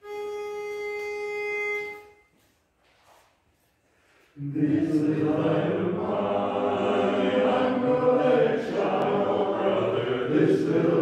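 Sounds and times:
pitch pipe note: 0.0 - 2.5.

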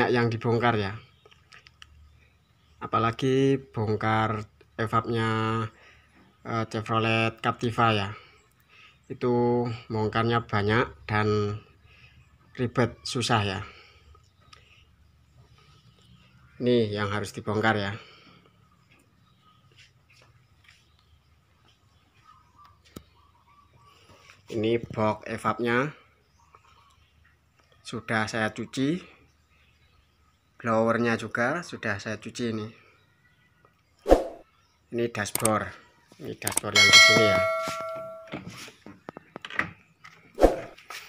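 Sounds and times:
sharp click: 35.3 - 35.6, 36.4 - 36.8.

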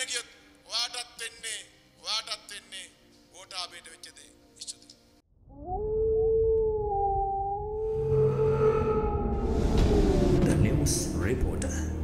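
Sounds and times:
wolf howl: 5.5 - 10.5
low rumble: 5.9 - 12.0.

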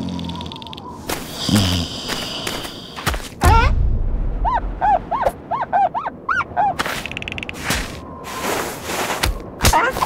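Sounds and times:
cartoon seal squeaky calls: 4.5 - 7.3.

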